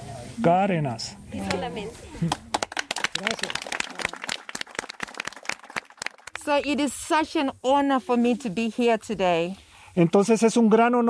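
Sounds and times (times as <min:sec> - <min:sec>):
small group clapping: 0:01.4 - 0:06.5.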